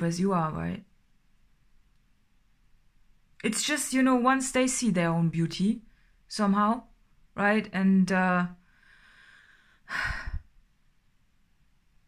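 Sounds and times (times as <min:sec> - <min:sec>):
woman sighing: 0:09.9 - 0:10.5.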